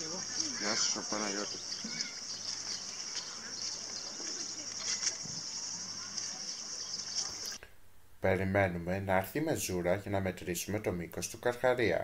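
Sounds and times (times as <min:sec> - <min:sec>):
cicadas droning: 0:00.0 - 0:07.6
faint voices: 0:00.0 - 0:07.6.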